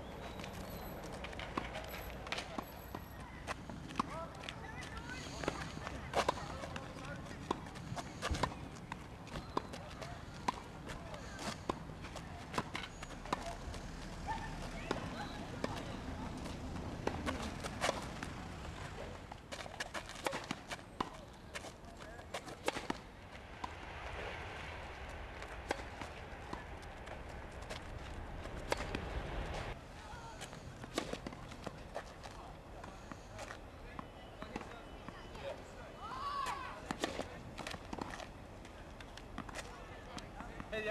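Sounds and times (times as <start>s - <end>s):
tennis balls struck by rackets: 0.4s - 13.8s, 14.6s - 29.8s.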